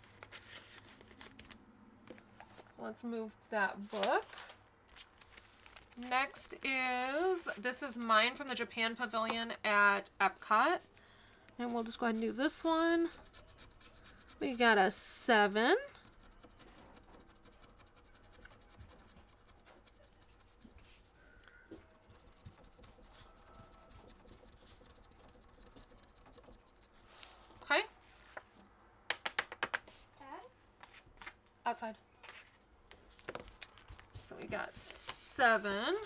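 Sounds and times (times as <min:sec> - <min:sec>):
scratching a scratch-off card: 0:11.6 - 0:21.2, 0:21.8 - 0:27.4.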